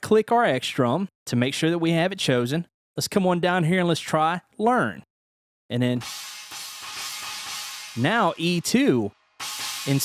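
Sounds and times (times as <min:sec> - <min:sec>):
cymbal ringing out: 0:06.0 - 0:10.0.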